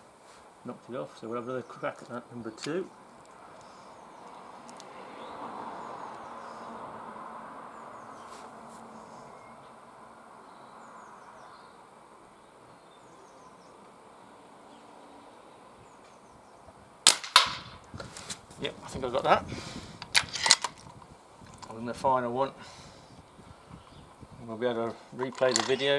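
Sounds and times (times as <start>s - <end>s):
faint outdoor background noise: 0.0s - 25.9s
air rifle firing crack: 17.1s - 17.8s
pellet striking target: 17.1s - 17.8s.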